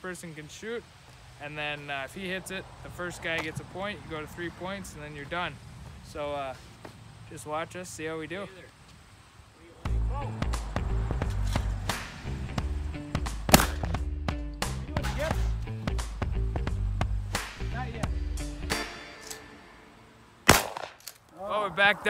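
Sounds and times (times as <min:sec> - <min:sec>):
background music with steady beat: 0:09.8 - 0:20.0
sharp cracks: 0:13.3 - 0:14.0, 0:20.4 - 0:21.4.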